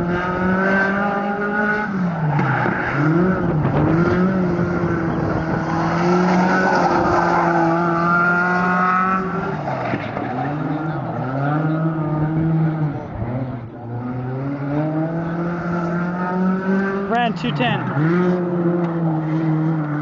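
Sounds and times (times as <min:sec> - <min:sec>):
race car engine revving: 0:00.0 - 0:20.0.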